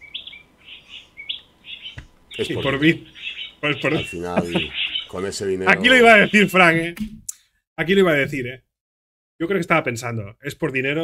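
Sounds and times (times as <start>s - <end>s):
small birds chirping: 0.0s - 6.9s.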